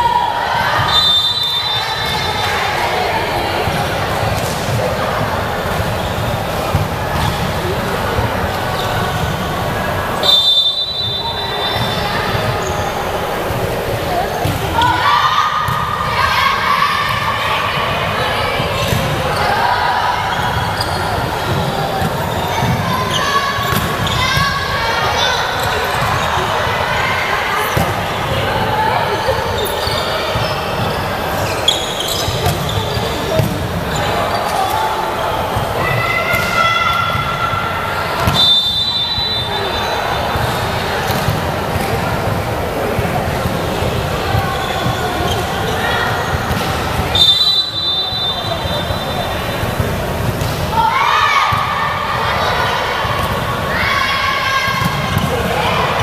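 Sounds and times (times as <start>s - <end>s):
players calling out: 0.0s - 56.0s
referee whistle: 0.8s - 2.4s, 10.2s - 13.0s, 38.2s - 40.3s, 47.1s - 49.4s
shoe squeaks: 7.2s - 7.6s, 8.7s - 9.5s, 10.2s - 13.5s, 20.3s - 26.5s, 28.8s - 35.0s, 44.4s - 49.8s.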